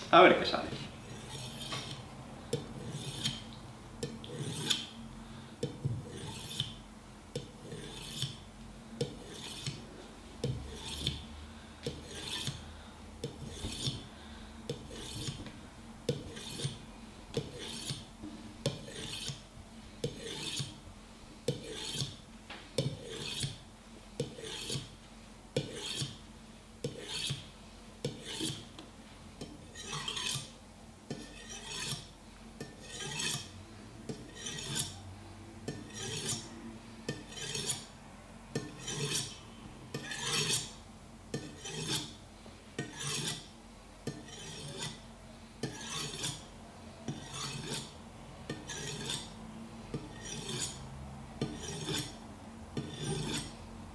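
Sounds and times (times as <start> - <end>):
knife rasping on ceramic: 1.1 - 3.4, 4.0 - 5.0, 5.6 - 6.8, 7.4 - 8.4, 9.0 - 9.8, 10.4 - 15.4, 16.1 - 16.8, 17.4 - 19.4, 20.0 - 20.8, 21.5 - 22.2, 22.8 - 23.6, 24.2 - 25.0, 25.6 - 26.2, 26.8 - 28.7, 29.4 - 30.5, 31.1 - 33.5, 34.1 - 35.0, 35.7 - 37.9, 38.6 - 42.2, 42.8 - 43.5, 44.1 - 45.0, 45.6 - 46.5, 47.1 - 50.8, 51.4 - 52.2, 52.8 - 53.6.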